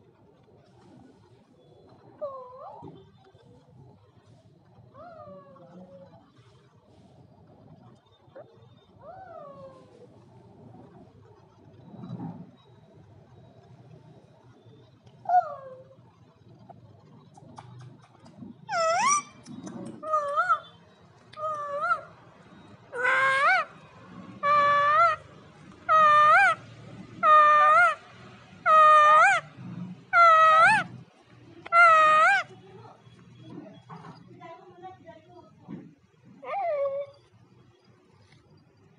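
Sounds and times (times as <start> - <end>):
parakeet whining call: 18.7 - 31.0, 31.7 - 32.5.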